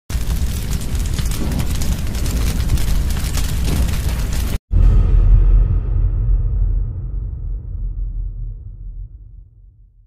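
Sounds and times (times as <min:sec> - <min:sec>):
fire and explosion rumble: 0:00.1 - 0:09.8.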